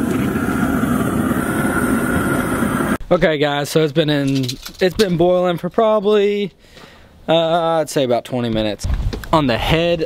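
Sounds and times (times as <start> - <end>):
propane burner rushing: 0.0 - 3.0.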